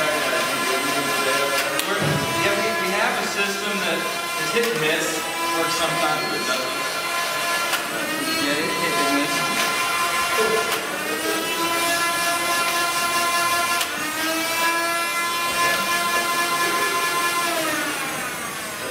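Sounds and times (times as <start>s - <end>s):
small electric motors whining: 0.0s - 18.9s.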